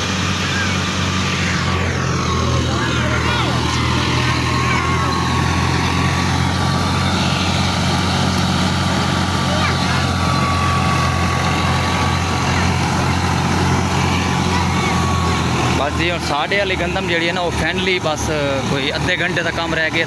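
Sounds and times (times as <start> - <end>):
thin steady whine: 0.0 - 20.0
thresher rushing noise: 0.0 - 20.0
tractor engine hum: 0.0 - 20.0.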